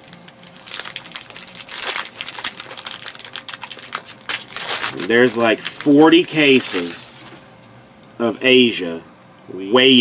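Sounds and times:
foil wrappers crinkling: 0.0 - 7.4.

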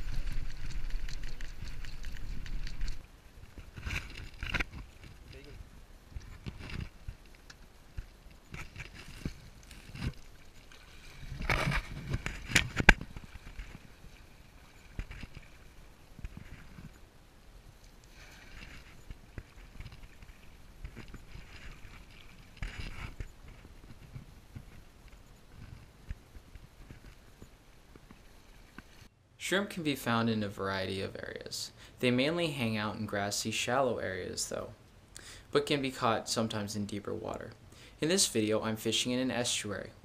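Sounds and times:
water splashing and sloshing: 0.0 - 29.1
knocks and rustles: 6.1 - 14.2.

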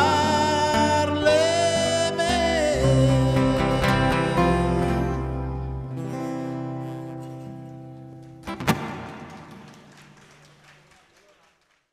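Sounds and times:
acoustic guitars chord ringing: 0.0 - 9.9.

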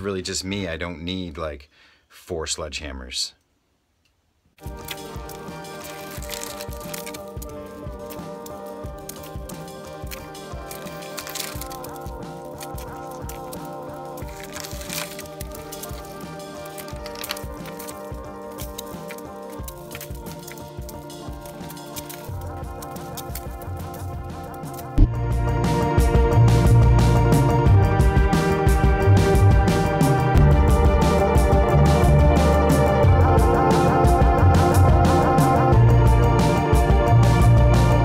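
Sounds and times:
instrumental music with a beat: 4.6 - 38.0.

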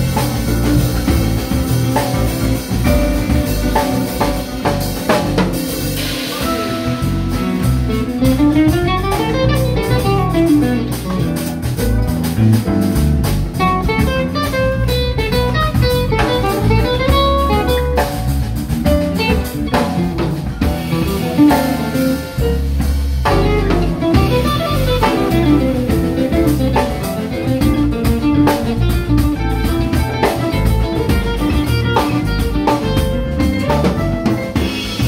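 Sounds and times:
live instrumental rock band: 0.0 - 35.0.

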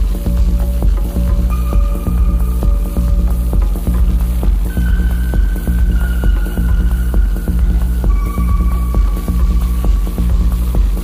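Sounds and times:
electronic club music: 0.0 - 11.0.

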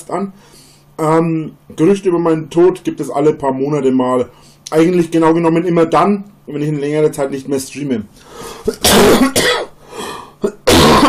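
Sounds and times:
man coughing: 8.6 - 9.8, 10.4 - 11.0.

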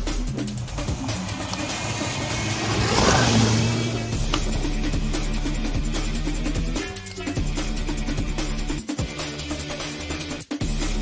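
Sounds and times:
tyres spraying dirt and leaves: 0.5 - 7.4
car engine revving hard: 0.6 - 6.2.

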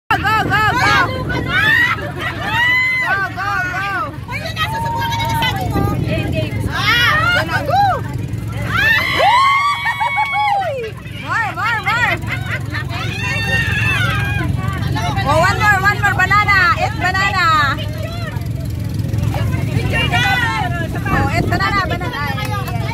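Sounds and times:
steady low rumble: 0.1 - 22.9
women talking and laughing: 0.1 - 22.9.

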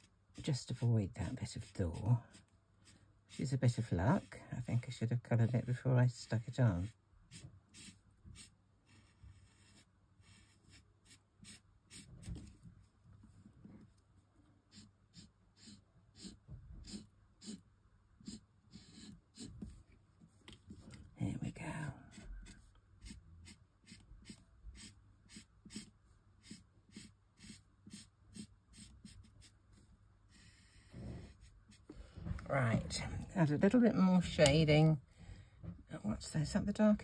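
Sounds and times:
marker scratching on card: 6.8 - 12.5, 14.7 - 17.6, 18.2 - 19.8, 22.1 - 31.9.

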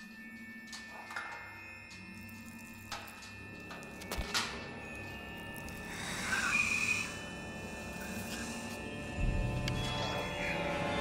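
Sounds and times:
droning horror film score: 0.0 - 11.0.

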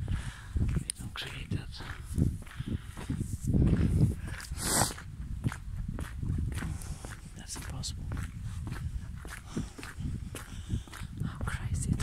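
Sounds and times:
footsteps: 0.0 - 12.0.

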